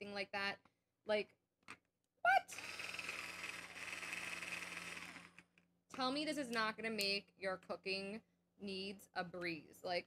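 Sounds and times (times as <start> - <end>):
electric food chopper whirring: 2.5 - 5.6.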